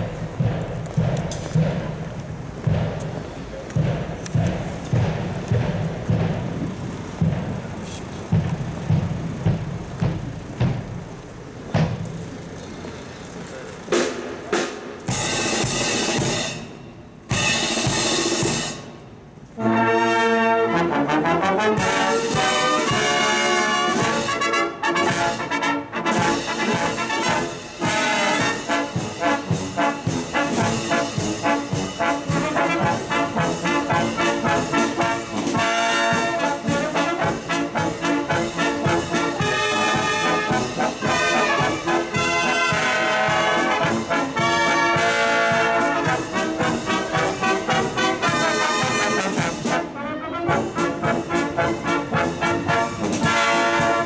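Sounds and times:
steady drum beat: 0:00.0 - 0:12.4, 0:13.9 - 0:19.0, 0:21.8 - 0:54.0
marching band brass: 0:00.0 - 0:54.0.

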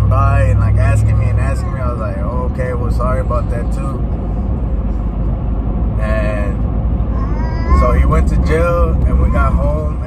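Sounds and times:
man talking: 0:00.0 - 0:04.0, 0:06.0 - 0:06.6, 0:07.7 - 0:10.0
road and engine rumble: 0:00.0 - 0:10.0.

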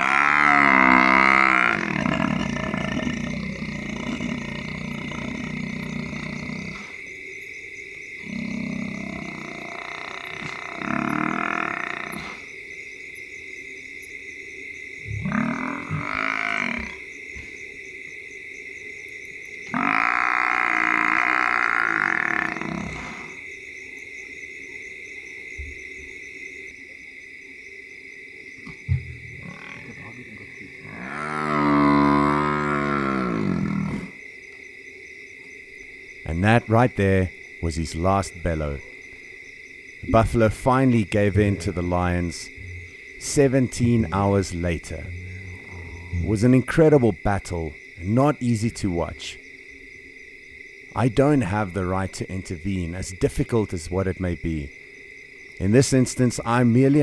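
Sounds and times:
buffalo bellowing: 0:00.0 - 0:07.0, 0:08.2 - 0:12.4, 0:19.7 - 0:23.4, 0:29.3 - 0:34.2
frogs croaking: 0:00.0 - 0:57.0
insects chirping: 0:00.0 - 0:57.0.

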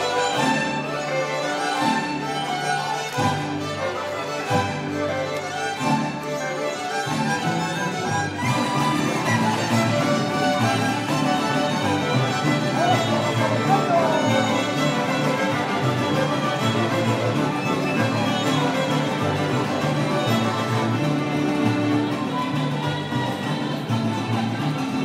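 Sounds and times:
mariachi ensemble playing: 0:00.0 - 0:25.0
violins: 0:00.0 - 0:25.0.

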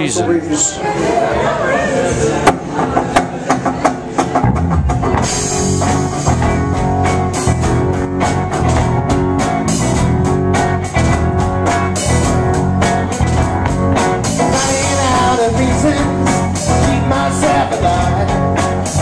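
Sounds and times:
rock band playing: 0:02.2 - 0:19.0
guitar strums: 0:02.4 - 0:19.0
drum kit and cymbals: 0:02.8 - 0:19.0.

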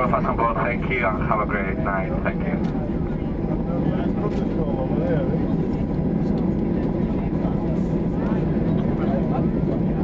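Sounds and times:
jet cabin rumble: 0:00.0 - 0:10.0
passengers talking faintly: 0:00.0 - 0:10.0.

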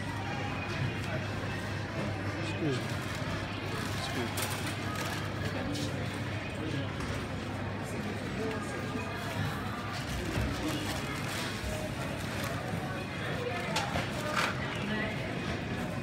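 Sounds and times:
shoppers chattering: 0:00.0 - 0:16.0.

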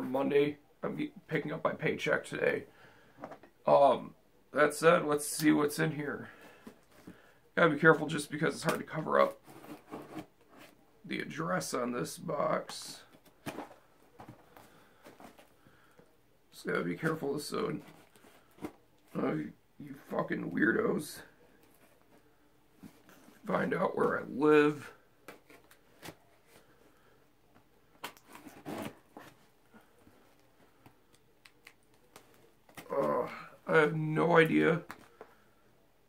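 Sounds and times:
cardboard parcel rustling: 0:06.2 - 0:10.8, 0:12.1 - 0:16.1, 0:16.9 - 0:19.3, 0:19.9 - 0:35.6.

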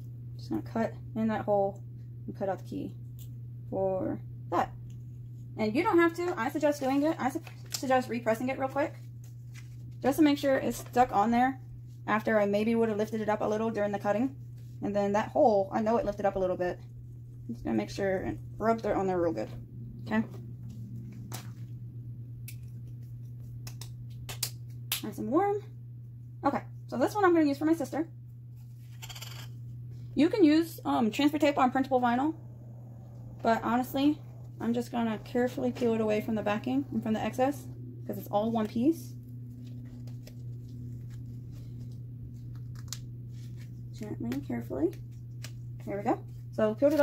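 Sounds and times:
steady low hum: 0:00.0 - 0:47.0
vinyl peeling crackles: 0:09.0 - 0:10.1, 0:39.2 - 0:47.0.

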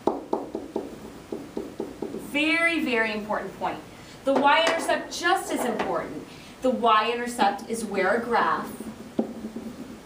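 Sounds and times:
pen tapping on whiteboard: 0:00.0 - 0:02.3, 0:09.2 - 0:10.0.

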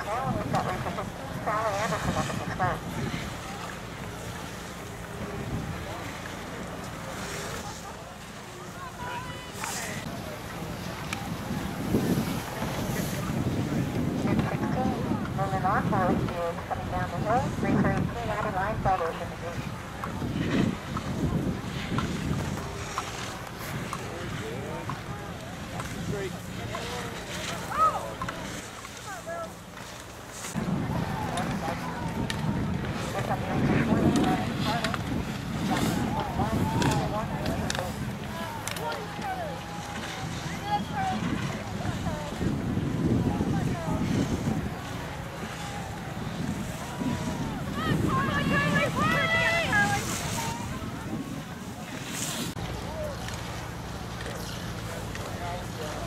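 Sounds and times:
wind buffeting microphone: 0:00.0 - 0:06.8, 0:10.0 - 0:28.1, 0:30.5 - 0:54.2
indistinct voices: 0:00.0 - 0:56.0.

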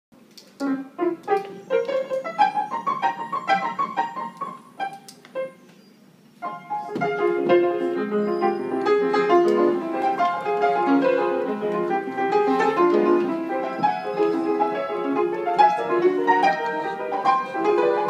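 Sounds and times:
piano playing: 0:00.6 - 0:18.0.

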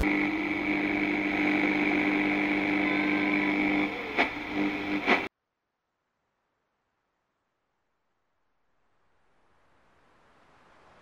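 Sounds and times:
car engine humming: 0:00.0 - 0:05.3.

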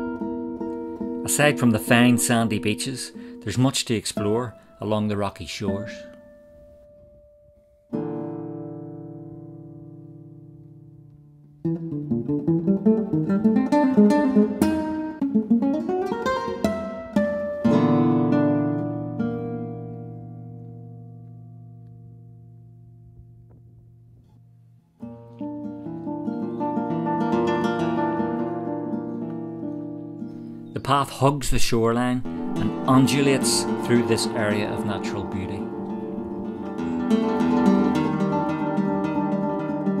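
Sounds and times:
classical guitar notes: 0:00.0 - 0:40.0.

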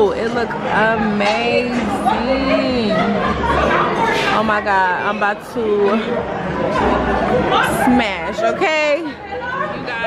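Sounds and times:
restaurant chatter: 0:00.0 - 0:10.0.

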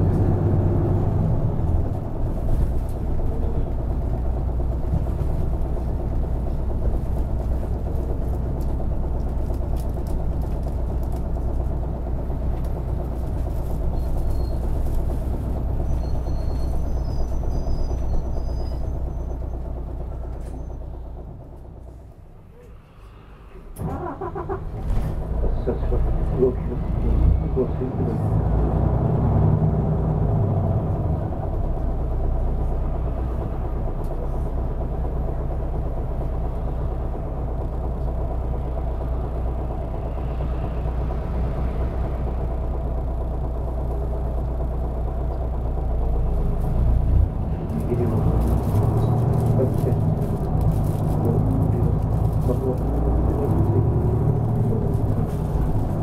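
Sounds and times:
bus diesel engine rumbling: 0:00.0 - 0:56.0
road and tyre noise: 0:00.0 - 0:56.0.

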